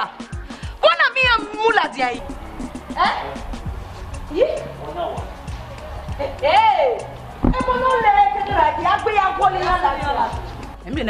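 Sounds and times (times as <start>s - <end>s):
background music: 0.0s - 11.0s
ticking percussion: 0.1s - 11.0s
low drum thumps: 2.2s - 5.8s, 7.2s - 9.0s.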